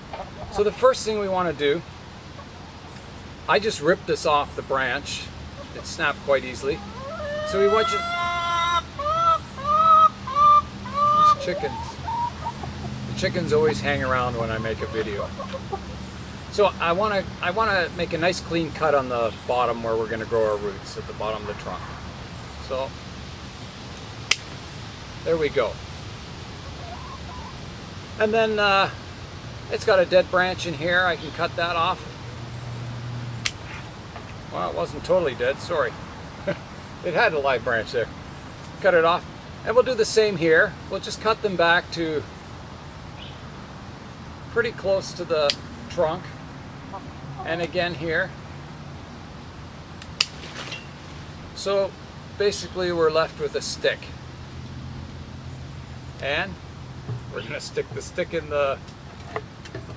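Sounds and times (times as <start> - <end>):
pruning shears click: 50.0 - 50.4
pruning shears snipping stem: 50.0 - 50.9
faint rustle: 50.3 - 51.4.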